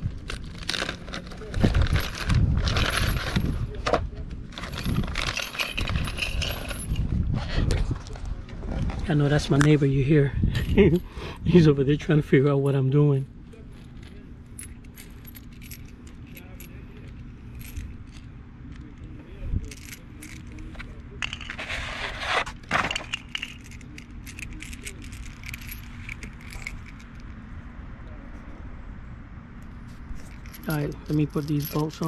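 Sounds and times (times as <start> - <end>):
metal bolts clinking: 4.5 - 7.1, 13.8 - 21.7, 22.7 - 27.3, 30.2 - 32.0.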